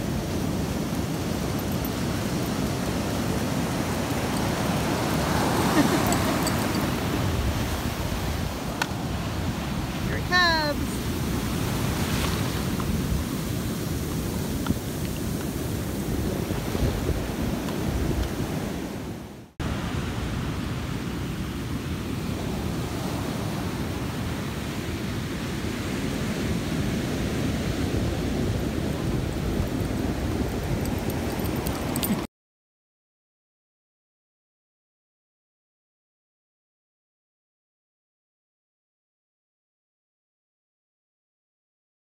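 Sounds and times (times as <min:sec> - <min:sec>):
wind buffeting microphone: 0:00.0 - 0:19.3
surf washing on beach: 0:00.0 - 0:32.2.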